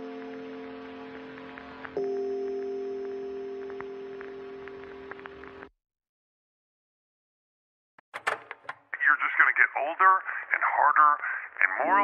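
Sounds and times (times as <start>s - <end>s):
held chord of steady tones: 0.0s - 5.3s.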